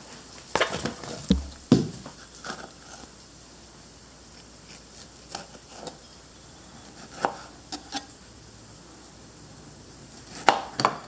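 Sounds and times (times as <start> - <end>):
knife knocking on cutting board: 1.3 - 2.0
knife slicing strawberries: 4.3 - 6.1, 6.8 - 8.2.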